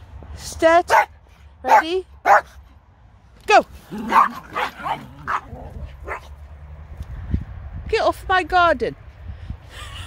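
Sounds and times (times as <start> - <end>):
small dogs yapping: 3.9 - 6.3.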